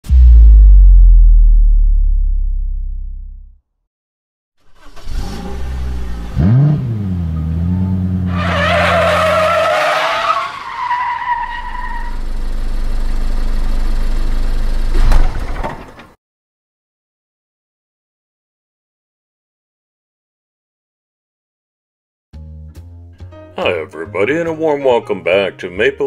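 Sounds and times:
sharp hit: 0.0 - 3.5
car engine revving: 4.8 - 9.6
tyres squealing: 8.3 - 12.1.

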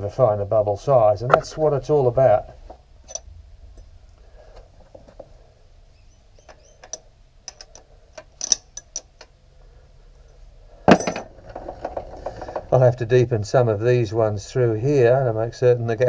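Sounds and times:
light metallic clicks and clinks: 3.1 - 3.9, 6.4 - 9.3.

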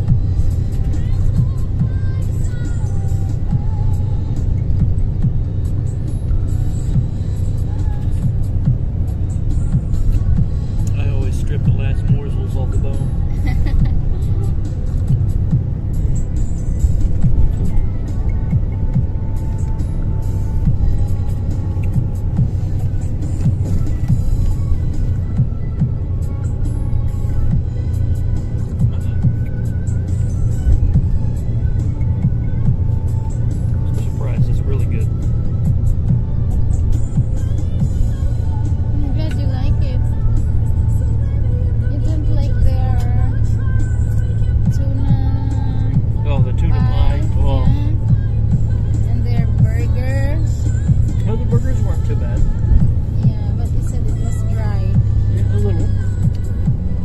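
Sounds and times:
bus engine and road rumble: 0.0 - 57.0.

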